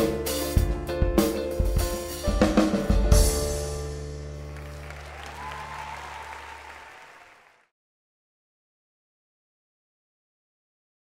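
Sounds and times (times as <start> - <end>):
audience applauding: 4.2 - 7.7.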